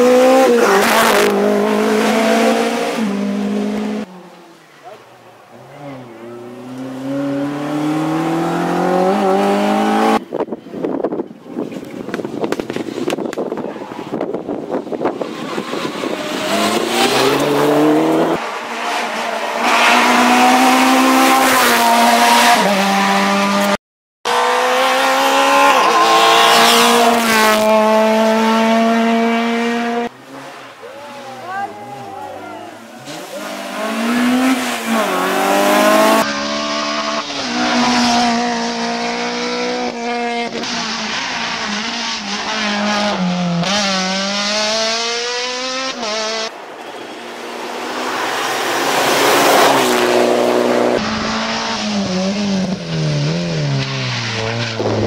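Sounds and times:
rally cars revving and passing: 0:00.0 - 0:55.0.

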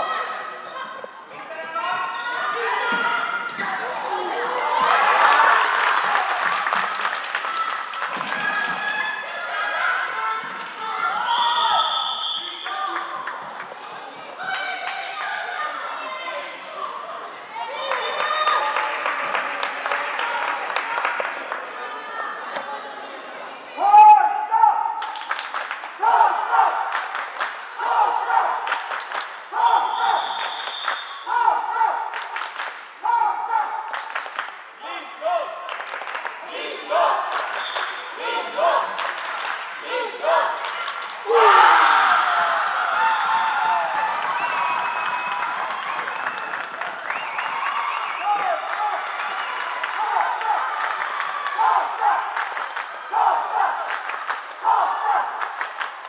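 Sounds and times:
crowd shouting and cheering: 0:00.0 - 0:56.0.

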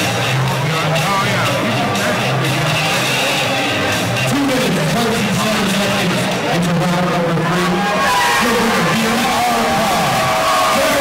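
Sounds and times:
loud music over arena speakers: 0:00.0 - 0:11.0.

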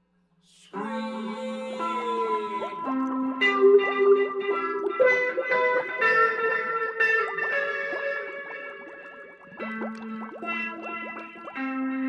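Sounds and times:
electric guitar playing: 0:00.8 - 0:12.0.

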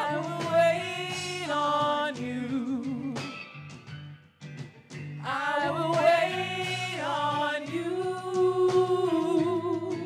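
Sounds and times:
women singing long held note: 0:05.3 - 0:10.0.

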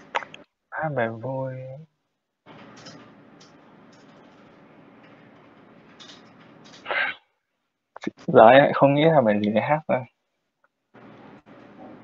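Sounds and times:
faint steady line hiss: 0:00.0 - 0:12.0.

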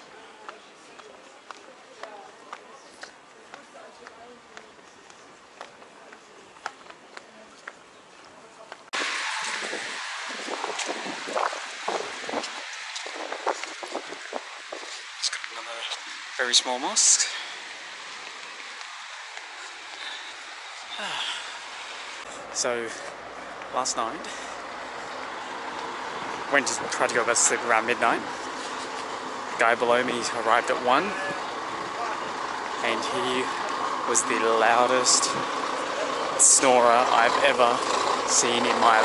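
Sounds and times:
steady street hiss: 0:00.0 - 0:39.0
voices of passers-by: 0:00.0 - 0:39.0
footsteps on cobblestones: 0:00.4 - 0:15.5, 0:17.5 - 0:20.9.

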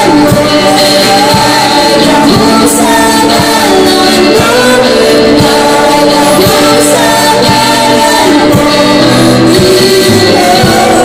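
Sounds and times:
drum kit beat: 0:00.0 - 0:11.0
electric guitar: 0:00.0 - 0:11.0
woman singing into microphone: 0:00.0 - 0:11.0.

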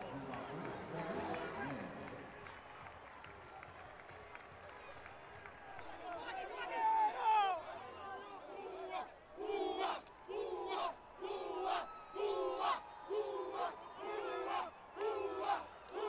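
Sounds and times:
men chanting in unison: 0:08.6 - 0:16.0.

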